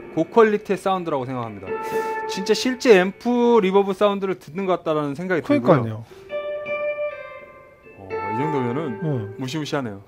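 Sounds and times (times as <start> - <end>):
electric guitar notes with reverb: 0.0 - 3.2, 6.1 - 9.8.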